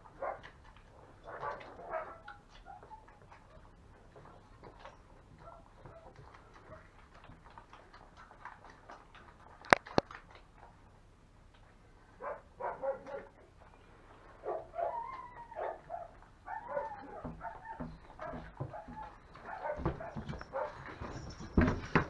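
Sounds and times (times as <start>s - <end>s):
dogs whimpering and whining: 1.5s - 3.6s, 14.5s - 21.4s.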